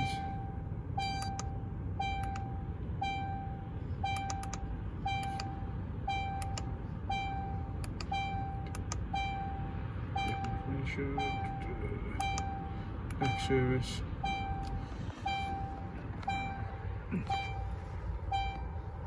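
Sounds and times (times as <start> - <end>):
car warning chime: 0.0 - 19.0
low steady rumble: 0.0 - 19.0.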